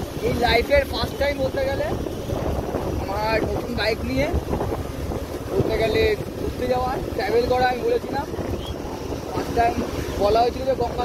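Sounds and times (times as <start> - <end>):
road noise rumble: 0.0 - 11.0
wind buffeting microphone: 0.0 - 11.0.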